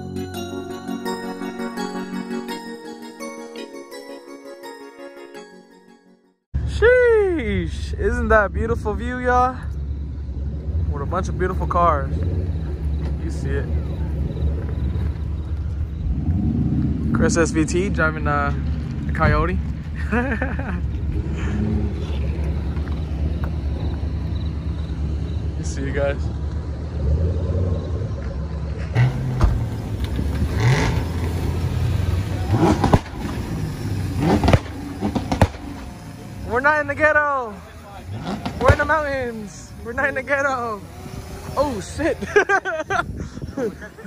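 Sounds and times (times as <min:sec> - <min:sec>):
car engines rumbling: 0:06.6 - 0:44.0.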